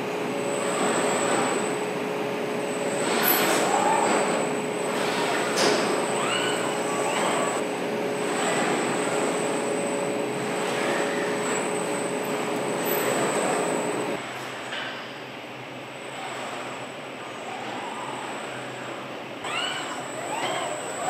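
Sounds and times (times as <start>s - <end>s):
machinery humming: 0.0s - 14.4s, 15.2s - 21.0s
machinery squeals: 2.9s - 7.6s, 10.4s - 14.0s, 17.2s - 21.0s.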